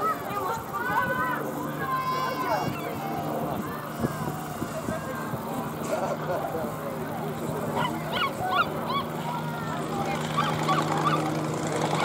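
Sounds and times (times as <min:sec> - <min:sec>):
biplane radial engine droning: 0:00.0 - 0:12.0
crowd talking and calling out: 0:00.0 - 0:12.0.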